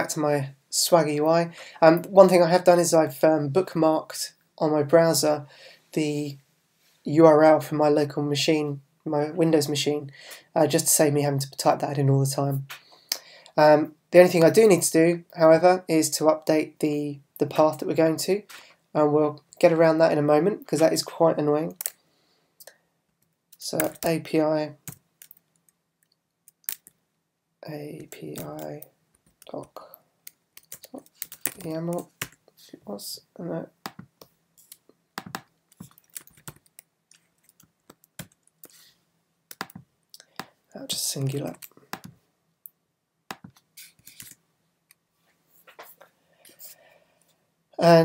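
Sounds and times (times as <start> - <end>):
soft breaths: 5.5 - 6.0, 22.0 - 22.9, 45.2 - 47.5
keyboard and mouse clicks: 28.3 - 32.4, 33.8 - 38.8, 39.5 - 40.5, 41.4 - 44.4.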